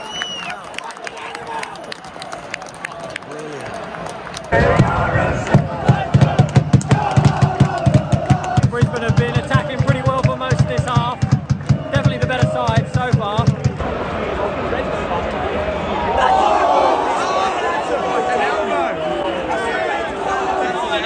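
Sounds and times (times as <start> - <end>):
crowd chanting: 4.5 - 21.0
steady drum beat: 4.6 - 13.8.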